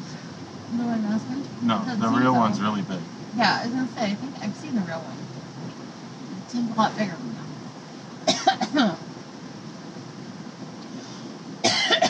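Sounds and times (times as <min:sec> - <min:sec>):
steady background hum: 0:00.0 - 0:12.0
person speaking: 0:01.6 - 0:03.0
person coughing: 0:11.6 - 0:12.0.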